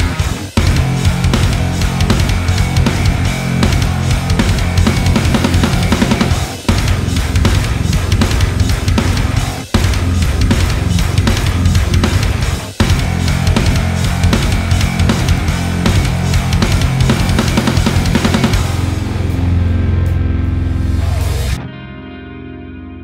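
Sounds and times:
electric guitar metal riff: 0.0 - 23.0.

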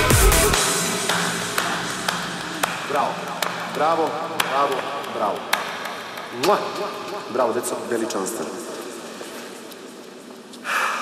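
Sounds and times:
slow single hand claps: 1.0 - 6.7.

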